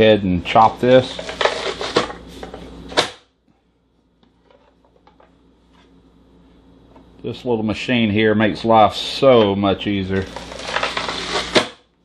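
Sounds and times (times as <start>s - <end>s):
vegetable chopper crunching onion: 10.2s - 11.8s.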